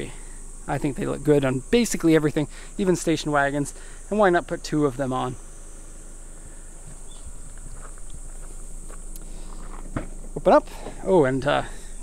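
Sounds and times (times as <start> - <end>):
high insect drone: 0.0 - 12.0
footsteps crunching on gravel: 6.7 - 11.3.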